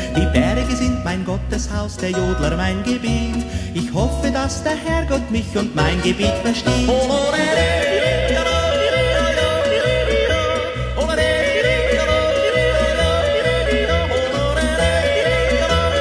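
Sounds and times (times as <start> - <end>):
wordless yodeling: 0.0 - 16.0.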